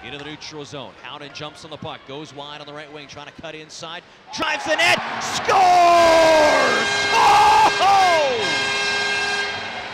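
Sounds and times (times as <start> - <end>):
crowd cheering: 4.3 - 8.7.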